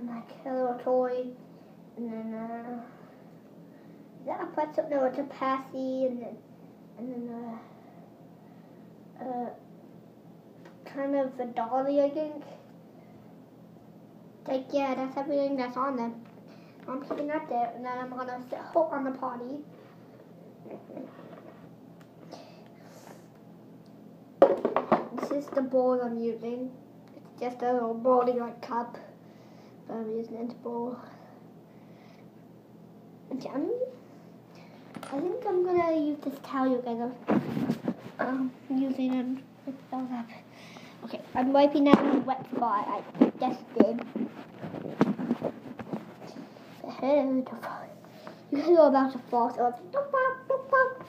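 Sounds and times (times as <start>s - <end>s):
plastic clattering knocks: 24.4s - 25.3s.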